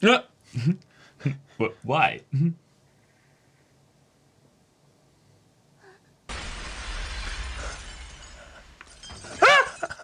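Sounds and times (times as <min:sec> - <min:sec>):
loud crash with rumble: 0:06.3 - 0:09.4.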